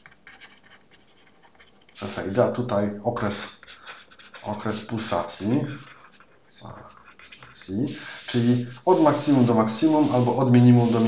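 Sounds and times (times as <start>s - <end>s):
stylus scratching on drawing tablet: 0.0s - 11.0s.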